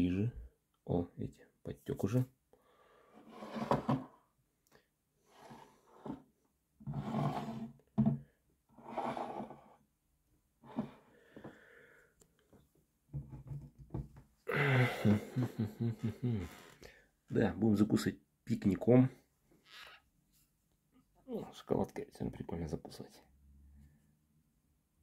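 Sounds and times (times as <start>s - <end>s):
man's wordless voice: 0.0s - 2.3s, 17.3s - 19.2s, 21.3s - 23.3s
man breathing: 2.5s - 3.3s, 10.9s - 12.2s, 14.4s - 17.2s.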